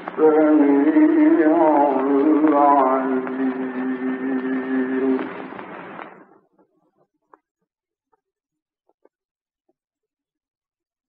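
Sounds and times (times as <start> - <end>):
man reciting a long note: 0.0 - 5.6
recording hiss: 0.0 - 6.4
faint crackle: 0.0 - 9.2.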